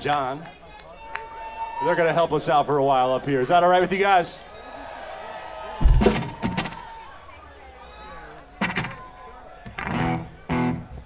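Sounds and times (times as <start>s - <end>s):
loud sudden thump: 5.8s - 6.8s.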